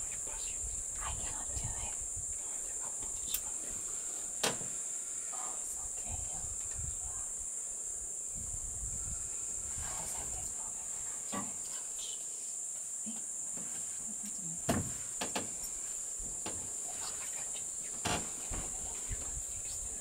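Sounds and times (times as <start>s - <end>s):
crickets chirping: 0.0s - 20.0s
sharp knocks: 14.7s - 15.6s.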